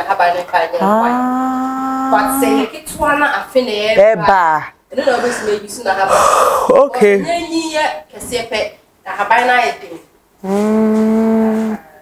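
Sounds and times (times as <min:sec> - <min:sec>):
held vocal call: 0:00.8 - 0:02.7, 0:10.4 - 0:12.0.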